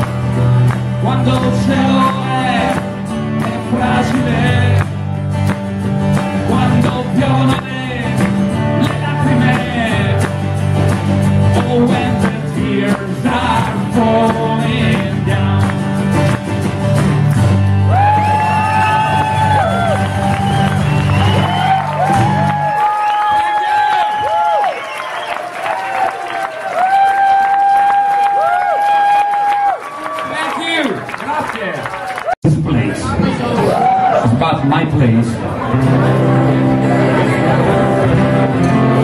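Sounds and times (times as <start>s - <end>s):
strummed acoustic guitar: 0.0s - 22.6s, 35.4s - 39.0s
audience clapping and cheering: 0.0s - 32.5s, 33.2s - 34.3s.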